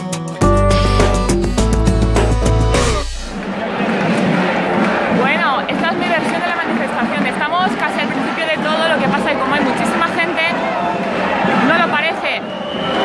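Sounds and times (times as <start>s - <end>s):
crowd talking at once: 1.6s - 13.0s.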